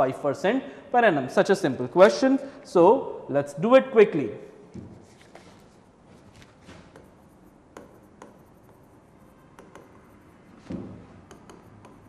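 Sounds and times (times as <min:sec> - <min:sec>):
stylus scratching on screen: 0:05.0 - 0:12.0
stylus tapping screen: 0:06.7 - 0:12.0.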